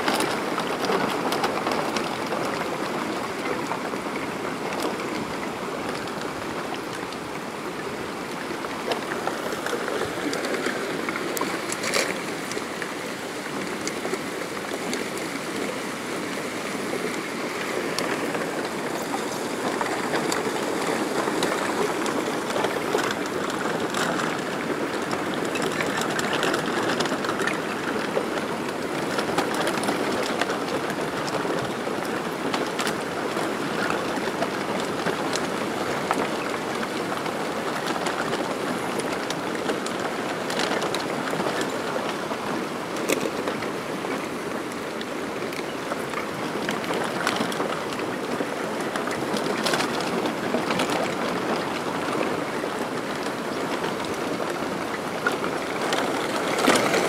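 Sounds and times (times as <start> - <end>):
river rushing: 0.0 - 57.0.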